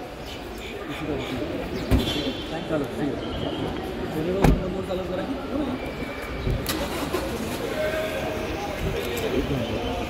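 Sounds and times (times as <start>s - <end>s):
crowd chatter: 0.0s - 10.0s
thump: 4.4s - 4.6s.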